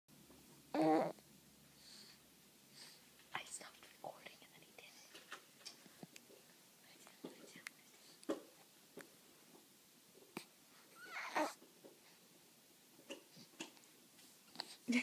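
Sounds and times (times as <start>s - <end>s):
soft breathy sounds: 0.6s - 15.0s.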